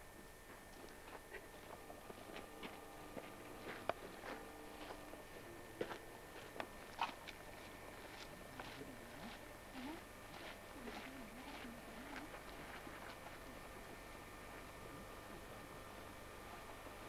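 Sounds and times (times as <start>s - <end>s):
faint distant voices: 1.4s - 17.0s.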